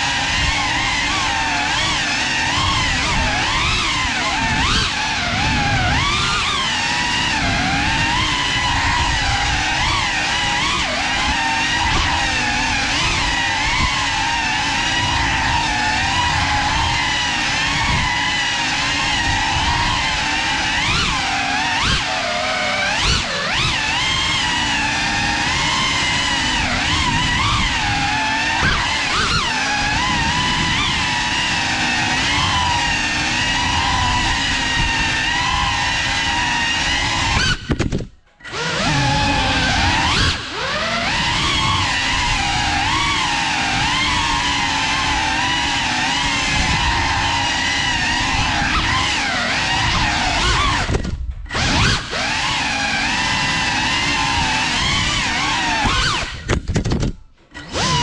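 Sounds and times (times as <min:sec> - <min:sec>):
drone motors and propellers whining: 0:00.0 - 0:58.0.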